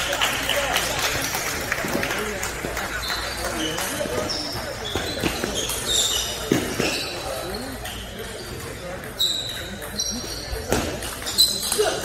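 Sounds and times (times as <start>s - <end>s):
background chatter: 0.0s - 12.0s
ping-pong ball bounces: 3.2s - 12.0s.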